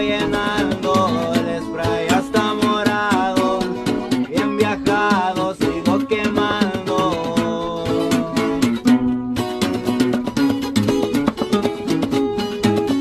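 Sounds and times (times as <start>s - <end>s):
bass line: 0.0s - 11.4s
lead acoustic guitar picking: 0.0s - 13.0s
strummed rhythm guitar: 0.0s - 13.0s.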